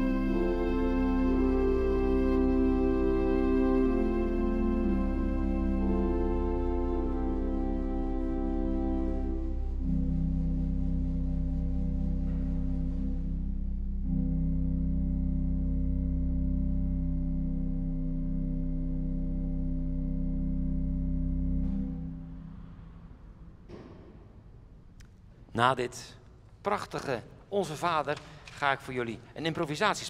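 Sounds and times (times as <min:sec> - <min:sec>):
pipe organ playing slow chords: 0:00.0 - 0:23.6.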